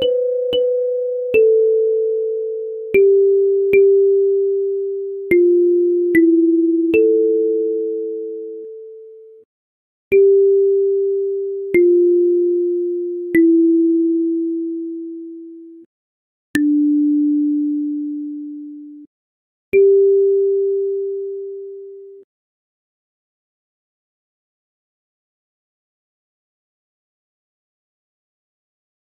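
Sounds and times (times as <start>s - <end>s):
kalimba melody: 0.0s - 9.0s, 10.1s - 15.6s, 16.6s - 18.8s, 19.8s - 22.1s.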